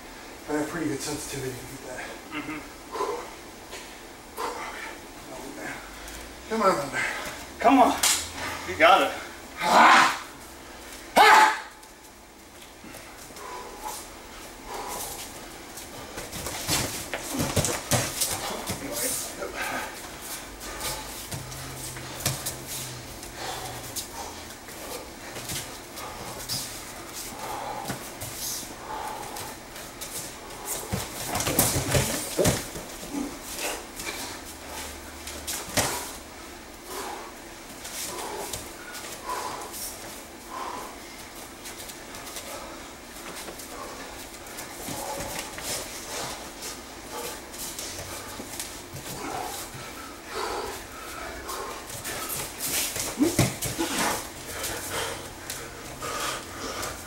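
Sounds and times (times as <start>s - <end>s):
grunts and hard breathing: 1.1s - 10.4s, 12.8s - 57.0s
bodies slapping together: 7.9s - 8.3s, 14.9s - 28.4s, 29.2s - 34.3s, 35.4s - 36.2s, 51.5s - 55.6s.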